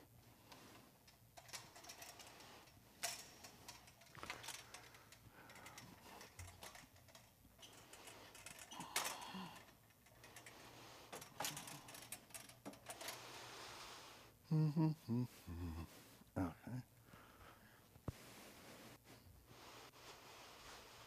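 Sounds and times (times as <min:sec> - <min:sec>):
clicks and knocks of handling equipment: 0:00.5 - 0:13.2.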